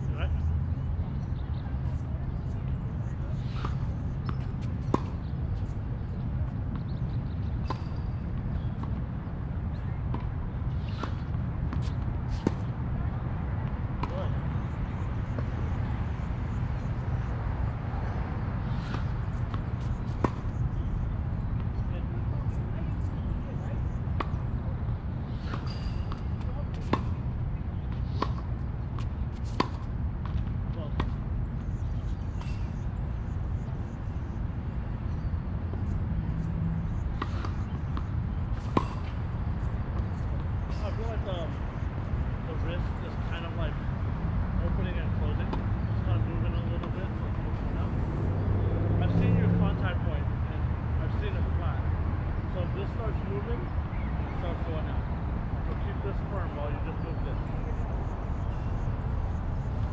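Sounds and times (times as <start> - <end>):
tennis balls bouncing on hard court: 3.5 - 6.0, 6.7 - 9.1, 9.7 - 12.8, 18.1 - 21.9, 25.3 - 32.9, 34.8 - 41.1
racquets striking tennis balls: 37.0 - 41.1.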